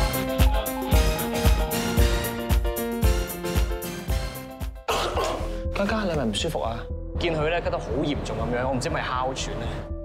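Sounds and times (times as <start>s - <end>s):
child coughing: 4.9s - 5.6s.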